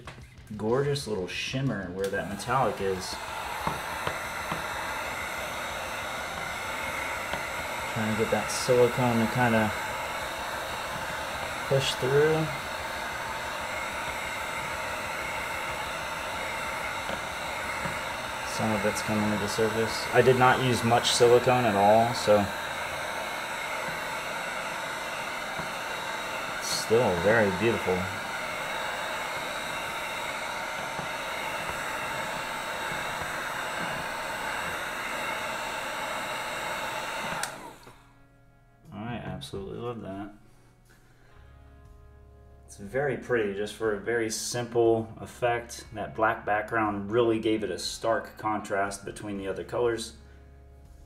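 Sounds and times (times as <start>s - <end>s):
heat gun blowing air: 1.9s - 38.1s.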